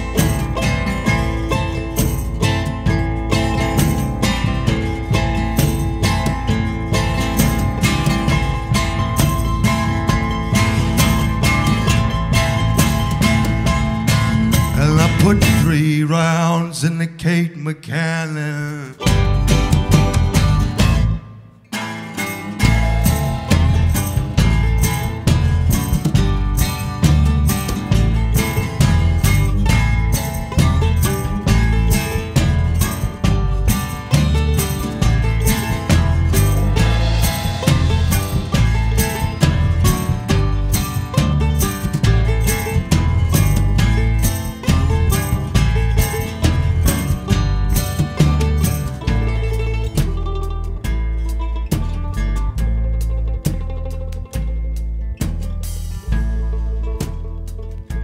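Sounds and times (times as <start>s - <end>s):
drum kit: 0.0s - 16.1s, 18.6s - 58.0s
electric bass: 0.0s - 17.2s, 17.8s - 58.0s
acoustic guitar: 0.0s - 58.0s
mandolin: 0.0s - 58.0s.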